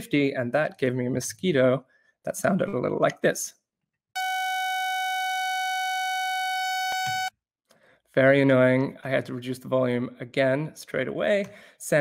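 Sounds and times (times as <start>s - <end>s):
synthetic buzzing tone: 4.2s - 7.3s.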